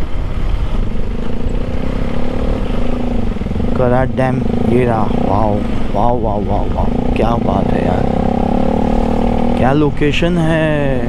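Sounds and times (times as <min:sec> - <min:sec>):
motorcycle engine running low speed: 0:00.0 - 0:11.0.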